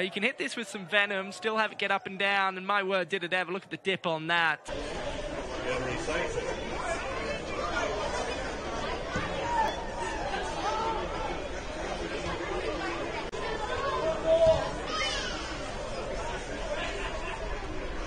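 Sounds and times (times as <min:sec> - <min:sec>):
indistinct chatter of voices: 0:04.7 - 0:18.0.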